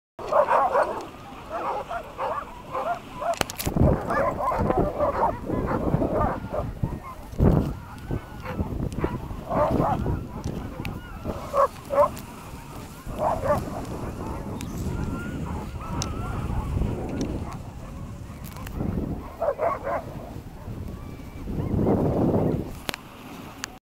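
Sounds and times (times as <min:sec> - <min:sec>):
dogs barking and yipping: 0:00.2 - 0:20.8
sled rushing noise: 0:00.2 - 0:23.6.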